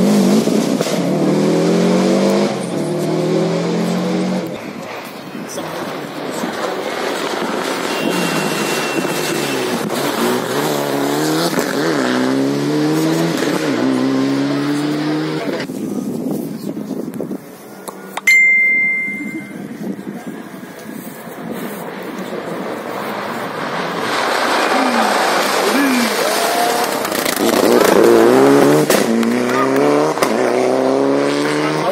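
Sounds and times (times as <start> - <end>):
car engine revving: 0.0 - 4.5, 5.7 - 15.7, 21.9 - 31.9
short high beep: 18.2 - 19.7
rally car accelerating past: 22.3 - 31.9.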